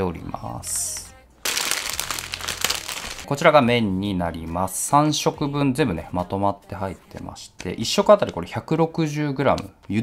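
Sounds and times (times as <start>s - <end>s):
plastic packaging crinkling: 1.4s - 3.3s.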